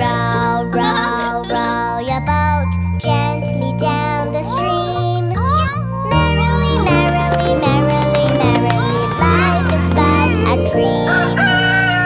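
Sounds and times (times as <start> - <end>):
children's song music: 0.0 - 12.0
rooster crowing: 11.1 - 12.0.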